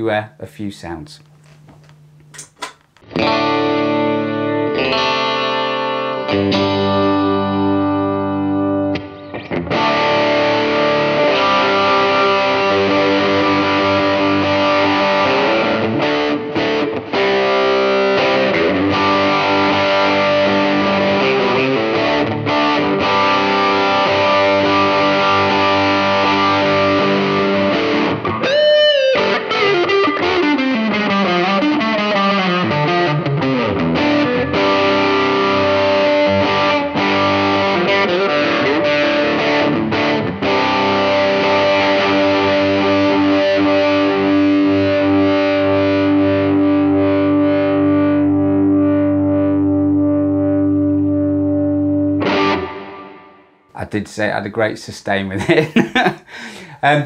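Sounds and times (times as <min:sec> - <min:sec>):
distorted electric guitar: 0:01.3 - 0:53.4.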